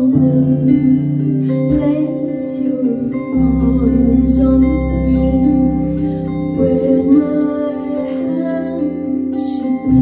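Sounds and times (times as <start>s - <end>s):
electric guitar chords: 0.0s - 10.0s
keyboard chords: 0.0s - 10.0s.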